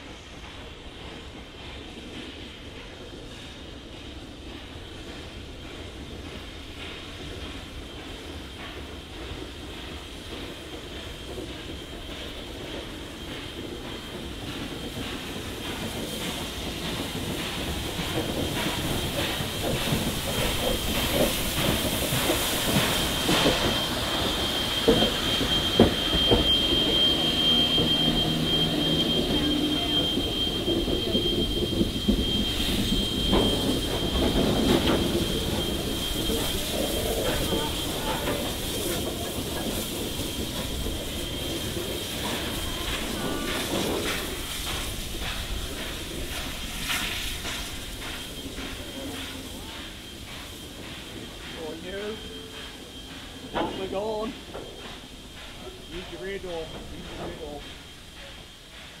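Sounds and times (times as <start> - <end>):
train wheels rumbling: 0.0 - 59.0.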